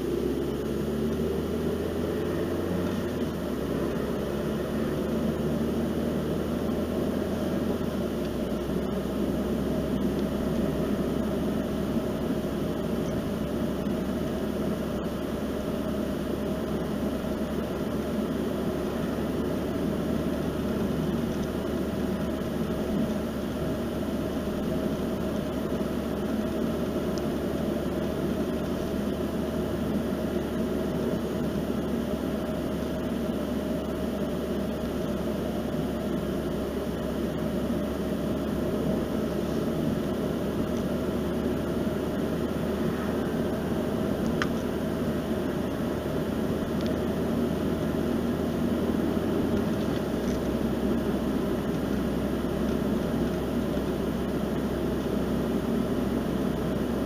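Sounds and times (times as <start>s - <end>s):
car interior road and engine noise: 0.0s - 57.0s.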